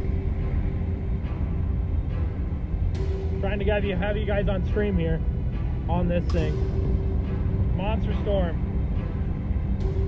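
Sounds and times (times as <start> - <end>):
faint sustained music tone: 0.0 - 10.0
road and wind rumble: 0.0 - 10.0.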